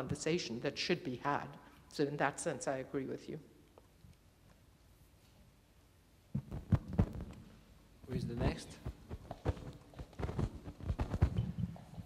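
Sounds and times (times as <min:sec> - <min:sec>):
microphone handling thumps and rubs: 0:06.3 - 0:07.5, 0:08.1 - 0:12.0.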